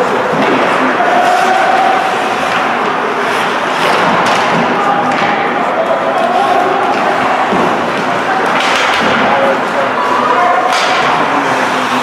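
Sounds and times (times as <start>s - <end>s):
echoing voices: 0.0s - 12.0s
thuds of play on ice: 0.2s - 5.6s, 6.5s - 9.5s, 10.6s - 11.3s.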